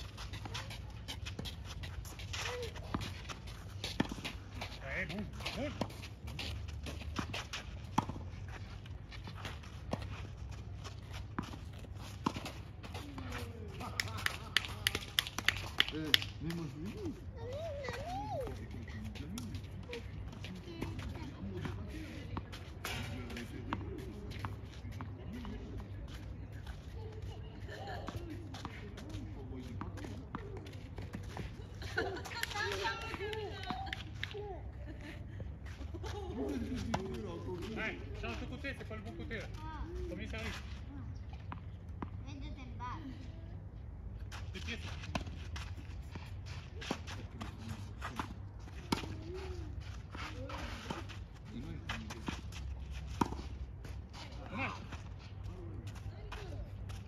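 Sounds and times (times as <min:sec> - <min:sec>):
tennis balls bouncing on court: 0:00.0 - 0:34.6, 0:35.4 - 0:40.5, 0:45.0 - 0:49.6, 0:50.4 - 0:54.9.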